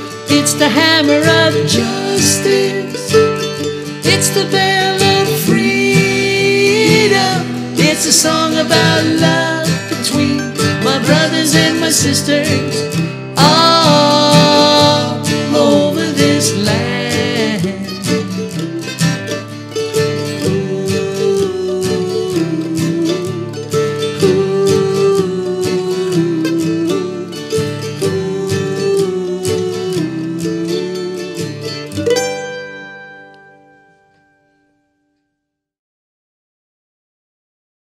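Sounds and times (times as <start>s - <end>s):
person singing: 0.0s - 32.2s
mandolin picking melody: 0.0s - 34.8s
acoustic guitar strumming: 0.0s - 35.0s.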